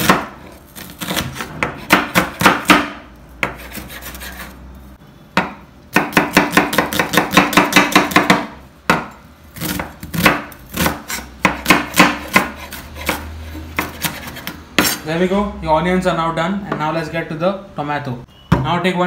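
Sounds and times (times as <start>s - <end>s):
knife chopping on wooden board: 0.0s - 4.5s, 5.4s - 15.0s.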